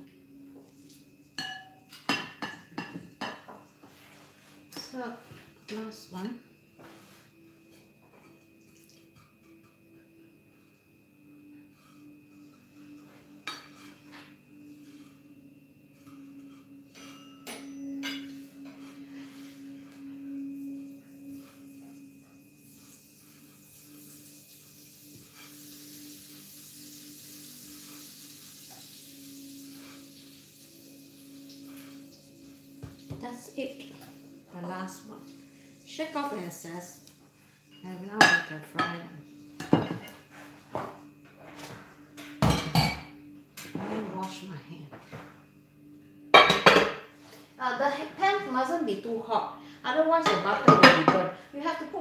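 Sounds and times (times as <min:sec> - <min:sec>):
tongs clinking against ceramic bowls: 0:01.4 - 0:03.4, 0:16.1 - 0:19.0
steady low hum: 0:09.2 - 0:24.1.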